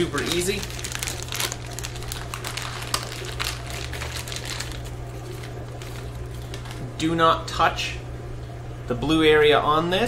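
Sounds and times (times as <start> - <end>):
plastic bag crinkling: 0.0 - 6.9
steady low hum: 0.0 - 10.0.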